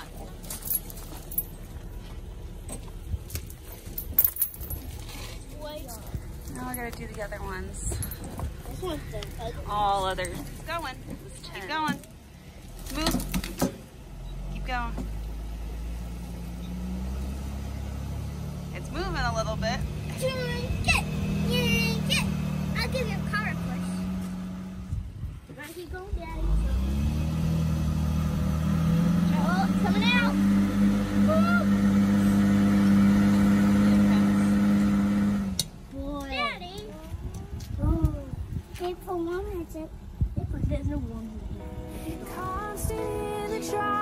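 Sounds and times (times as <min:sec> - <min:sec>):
car engine running under load: 0:00.0 - 0:44.0
steel chain clinking: 0:00.2 - 0:02.1, 0:02.7 - 0:05.5.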